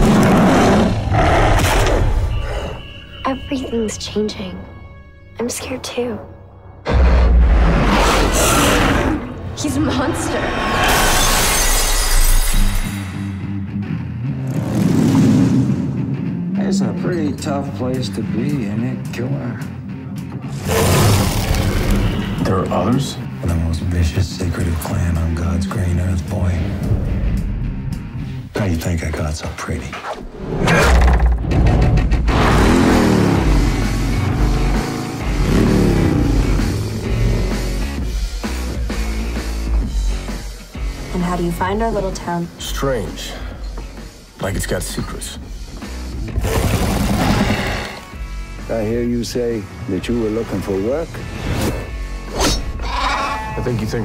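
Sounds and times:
trailer music: 0.0s - 54.0s
glass pane shattering: 10.8s - 13.0s
low pulsing music: 12.4s - 29.1s, 31.4s - 46.9s
motorcycle engine revving: 14.1s - 17.0s, 31.1s - 38.1s, 46.1s - 48.3s.

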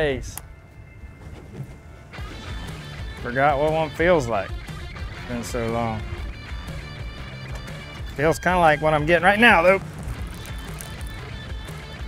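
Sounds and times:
background music: 0.0s - 12.0s
low rumble: 9.8s - 11.3s.

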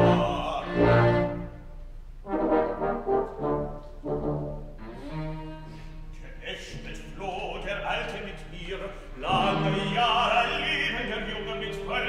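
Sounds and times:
orchestra playing with brass: 0.0s - 6.1s.

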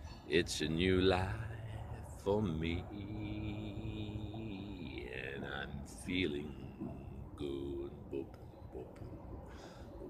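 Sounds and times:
man singing unaccompanied: 0.3s - 9.1s.

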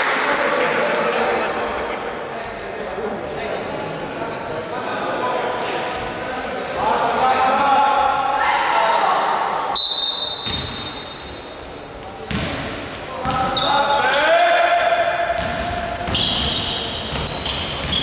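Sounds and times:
basketball bouncing: 12.3s - 13.5s
shoes squeaking: 14.7s - 18.0s.

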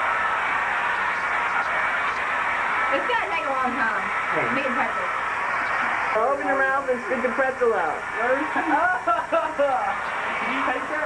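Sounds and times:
hair dryer blowing: 0.0s - 11.0s.

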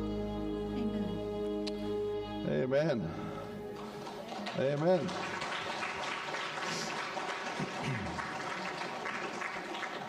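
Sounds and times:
congregation applauding: 3.6s - 10.0s.

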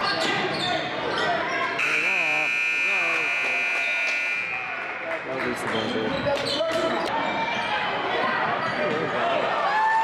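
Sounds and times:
voices from stands: 0.0s - 10.0s.

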